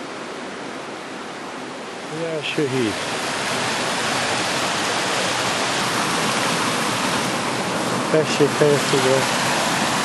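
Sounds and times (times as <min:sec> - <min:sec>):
river rushing over rocks: 0:00.0 - 0:10.0.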